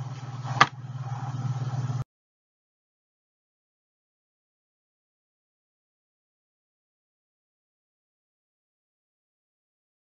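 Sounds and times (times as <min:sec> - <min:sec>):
low hum with fast flutter: 0:00.0 - 0:02.1.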